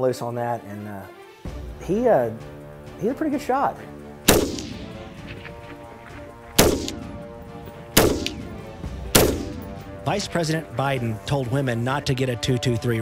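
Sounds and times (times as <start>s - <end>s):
faint music: 0.0s - 13.0s
rifle shots: 4.3s - 5.2s, 6.6s - 7.2s, 8.0s - 9.8s.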